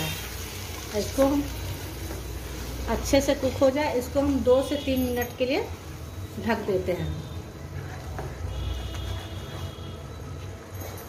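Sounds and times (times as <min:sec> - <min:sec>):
food sizzling in a pan: 0:00.0 - 0:06.1.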